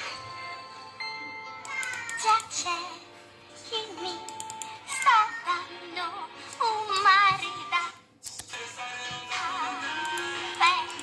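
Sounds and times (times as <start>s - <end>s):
music with high singing voice: 0.0s - 11.0s.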